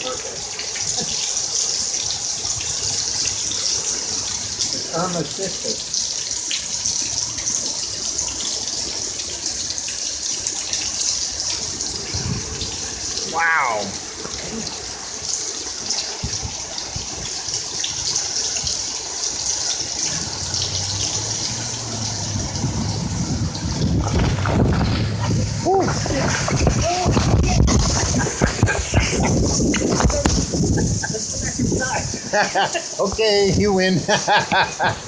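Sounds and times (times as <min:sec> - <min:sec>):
heavy rain pouring: 0:00.0 - 0:35.0
low rumble of wind gusts: 0:02.0 - 0:32.5.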